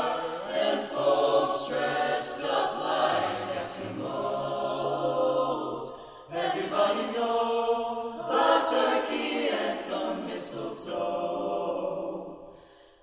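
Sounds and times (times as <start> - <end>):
mixed choir singing a cappella: 0.0 - 12.9.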